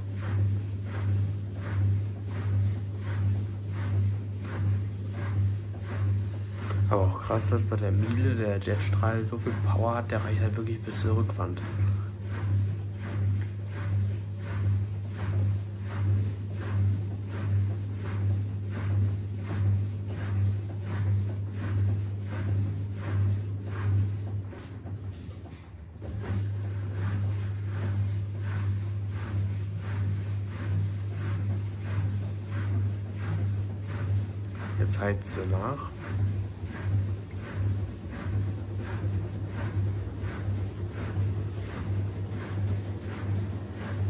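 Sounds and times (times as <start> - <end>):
washing machine hum: 0.0 - 44.0
water sloshing in turning drum: 0.0 - 44.0.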